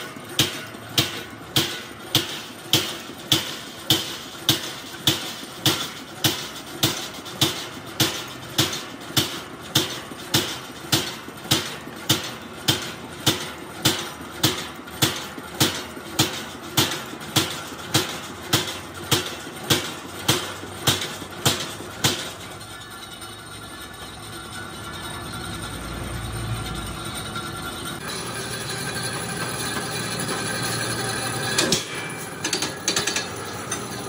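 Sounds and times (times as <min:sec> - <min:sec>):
punch press striking metal: 0:00.0 - 0:22.9, 0:28.0 - 0:34.0.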